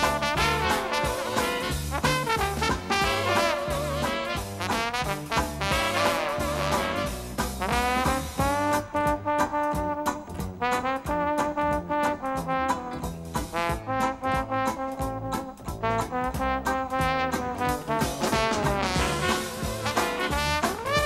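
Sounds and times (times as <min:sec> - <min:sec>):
jazz rhythm section swing beat: 0:00.0 - 0:21.0
trombone solo: 0:00.0 - 0:21.0.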